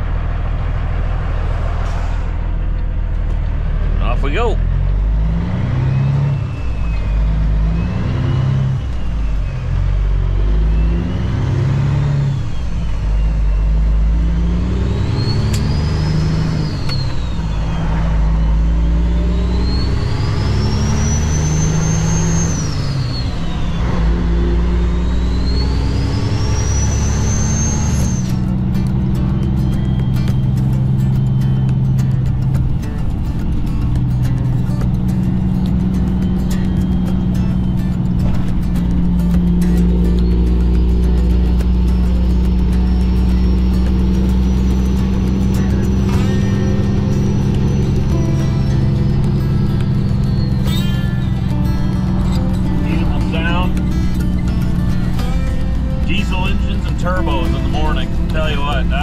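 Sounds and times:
diesel truck engine shifting gears: 0.0 - 59.0
turbo whistle: 14.9 - 28.5, 39.8 - 55.4.

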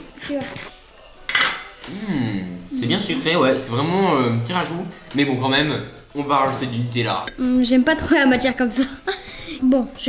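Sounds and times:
cutlery clinking against dishes: 0.5 - 1.9.

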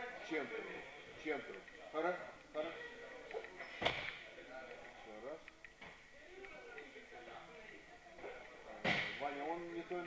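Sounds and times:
faint voices talking: 0.0 - 10.0.

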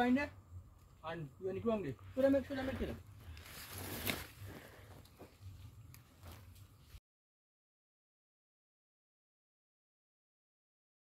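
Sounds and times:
rustling in undergrowth: 2.1 - 7.0
brushing strokes through plants: 2.2 - 7.0
footsteps in grass: 3.1 - 7.0.

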